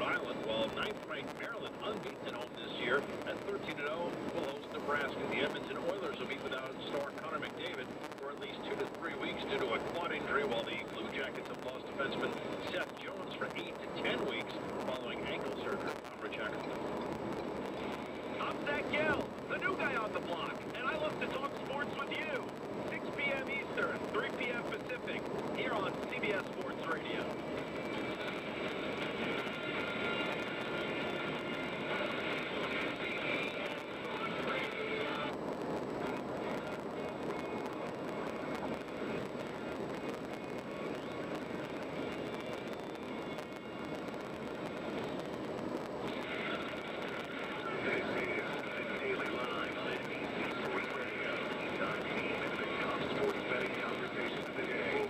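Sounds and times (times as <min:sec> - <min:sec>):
car road and tyre noise: 0:00.0 - 0:55.0
faint broadcast sound: 0:00.0 - 0:55.0.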